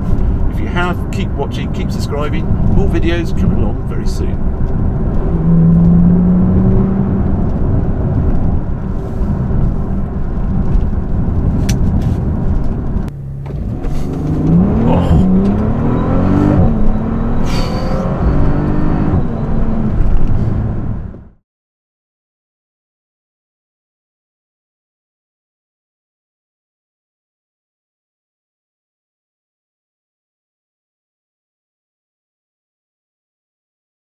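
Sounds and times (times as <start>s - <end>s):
gear changes: 0.0s - 21.3s
car engine accelerating: 0.0s - 21.4s
road noise: 0.0s - 21.4s.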